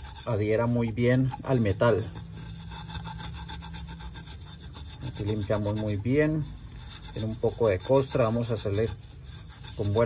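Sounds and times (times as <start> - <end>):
steel wool scrubbing metal lid: 0.0 - 10.0.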